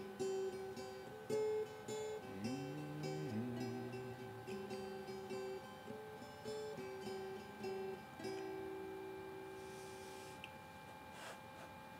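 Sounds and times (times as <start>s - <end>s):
acoustic guitar notes ringing: 0.0s - 10.2s.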